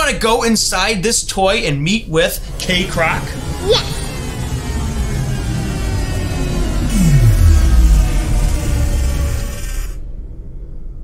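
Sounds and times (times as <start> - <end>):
low rumble: 2.4 - 11.0
falling swoosh: 2.8 - 10.0.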